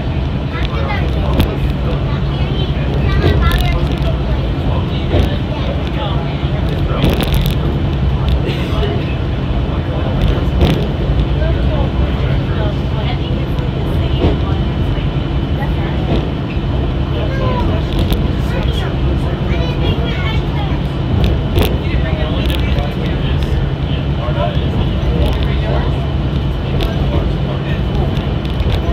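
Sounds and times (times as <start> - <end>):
monorail low rumble: 0.0 - 28.9
people talking indistinctly: 0.0 - 28.9.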